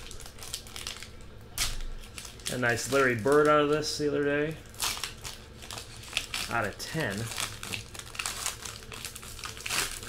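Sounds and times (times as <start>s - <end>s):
foil wrapper crinkling: 0.0s - 10.0s.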